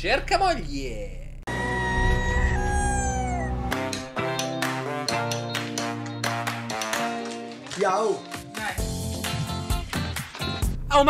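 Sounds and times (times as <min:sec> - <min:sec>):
held note sliding down: 0:01.5 - 0:04.1.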